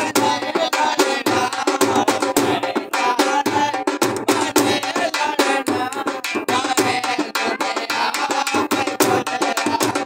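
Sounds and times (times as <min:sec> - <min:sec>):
sharp percussion beat: 0:00.0 - 0:10.0.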